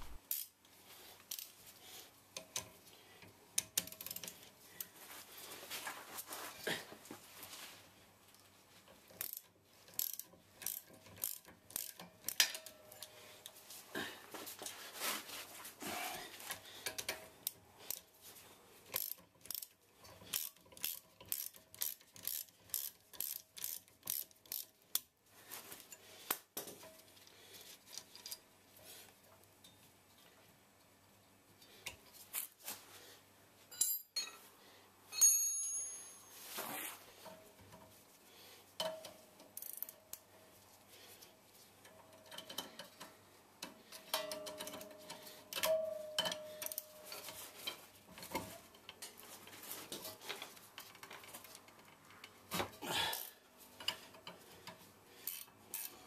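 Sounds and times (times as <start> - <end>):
ratchet spanner clicking: 3.6 - 4.4, 9.1 - 13.1, 18.9 - 25.1, 38.8 - 40.2
metallic clatter of tools: 9.1 - 13.6, 33.7 - 34.5, 38.8 - 40.2, 41.8 - 56.0.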